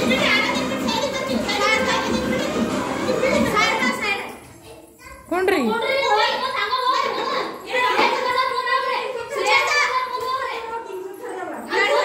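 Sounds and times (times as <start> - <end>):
recorded music playing: 0.0 - 3.8
children shouting and squealing: 0.0 - 12.0.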